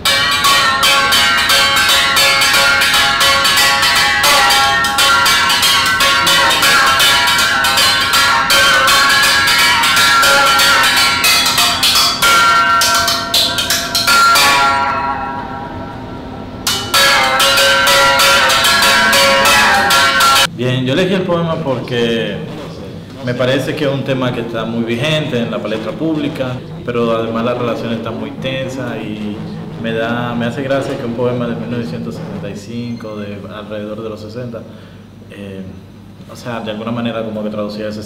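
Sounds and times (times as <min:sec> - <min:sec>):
musical bow string struck: 0:00.0 - 0:20.5, 0:24.1 - 0:33.1.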